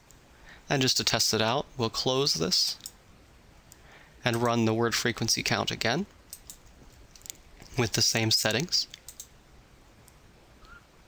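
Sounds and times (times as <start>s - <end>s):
computer mouse clicks: 6.3s - 6.6s, 8.5s - 9.3s.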